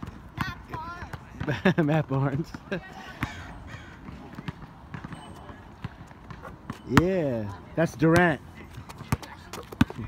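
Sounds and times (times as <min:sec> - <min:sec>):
basketball thuds on asphalt: 0:04.0 - 0:07.4, 0:08.0 - 0:10.0.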